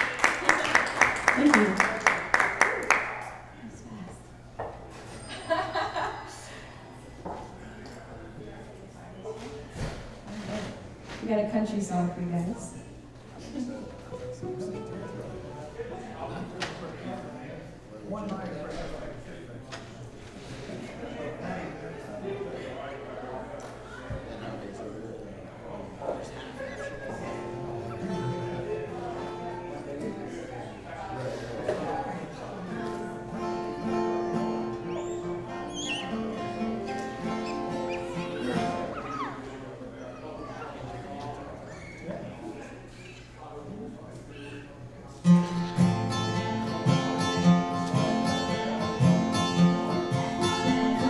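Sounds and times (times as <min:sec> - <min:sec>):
audience clapping: 0:00.0 - 0:03.5
people talking and laughing: 0:00.0 - 0:51.0
room murmur: 0:00.0 - 0:51.0.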